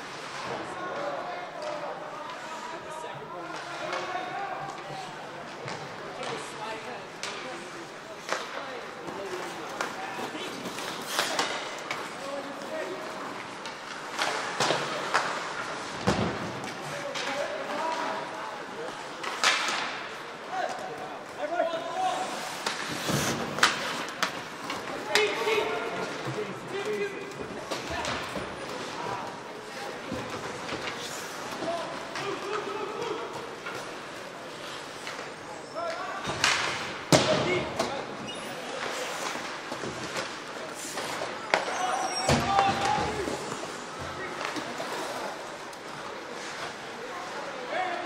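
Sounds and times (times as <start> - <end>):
hockey sticks clacking: 0.0 - 48.0.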